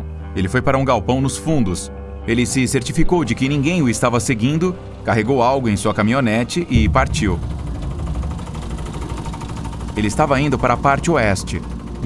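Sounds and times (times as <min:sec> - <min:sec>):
pickup truck engine running: 0:06.8 - 0:12.0.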